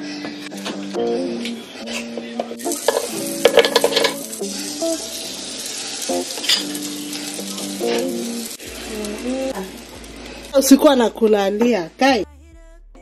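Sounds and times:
batter sizzling in waffle maker: 2.6 - 12.1
spoon clinking and scraping: 2.8 - 4.2, 6.1 - 8.3.

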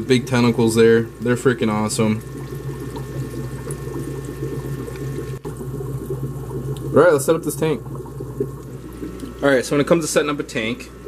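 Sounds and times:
aquarium water bubbling: 0.0 - 11.0.

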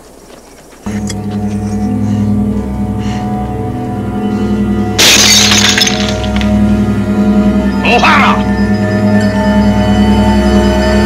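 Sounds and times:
background music: 0.9 - 11.0
glass shattering crash: 5.0 - 6.6.

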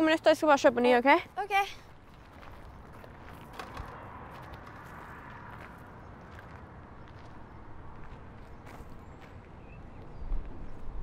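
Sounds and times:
footsteps on gravel: 1.1 - 10.1
low outdoor rumble: 1.2 - 11.0.

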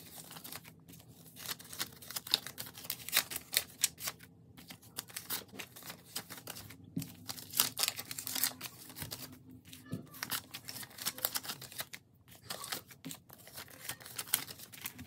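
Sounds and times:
banknotes rustling: 0.0 - 15.0.

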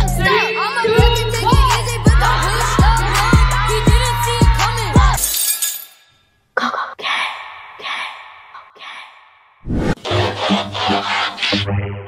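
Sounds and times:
electronic music with bass beat: 0.0 - 5.2
glass shattering: 5.2 - 6.2.

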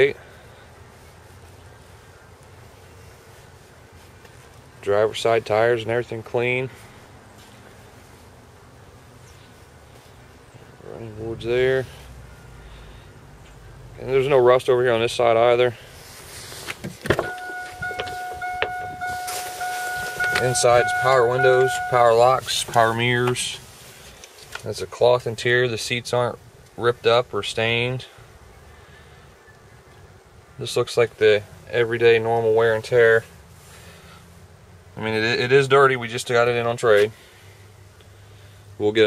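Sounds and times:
low outdoor rumble: 0.0 - 39.0
electronic warning chime: 17.2 - 22.4.

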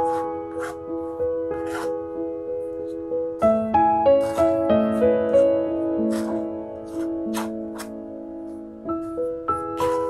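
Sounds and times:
palette knife scraping paint: 0.0 - 0.9, 1.6 - 2.0, 4.2 - 8.0
piano music: 0.0 - 10.0.

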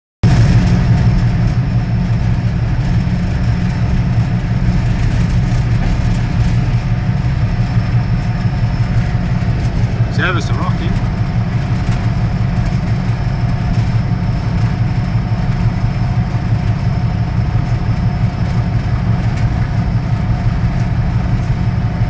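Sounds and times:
diesel locomotive engine drone: 0.2 - 22.0.

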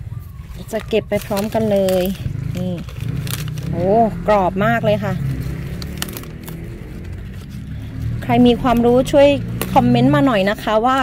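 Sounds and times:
low motor hum: 0.5 - 10.8.

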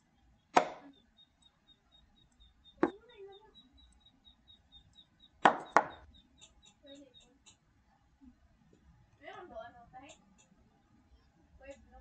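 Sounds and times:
chess move knocks: 0.6 - 0.9, 5.4 - 6.0.

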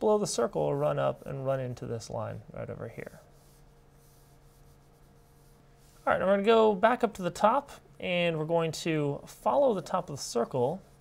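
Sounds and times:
pencil scratching on paper: 3.0 - 6.1.

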